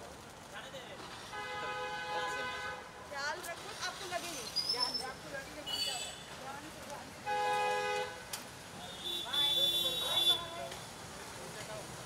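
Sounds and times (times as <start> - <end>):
faint street voices: 0.0 - 12.0
vehicle horn honking: 7.3 - 8.2, 8.8 - 10.5.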